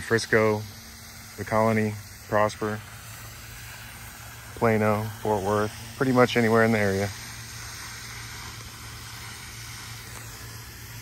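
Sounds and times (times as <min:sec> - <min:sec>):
even hiss: 0:00.0 - 0:11.0
low hum: 0:00.0 - 0:11.0.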